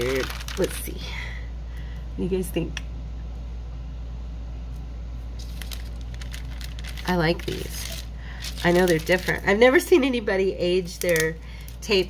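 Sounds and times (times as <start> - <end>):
plastic tape crackling: 0.0 - 0.9, 5.4 - 9.6, 10.8 - 11.8
steady low hum: 0.0 - 12.0.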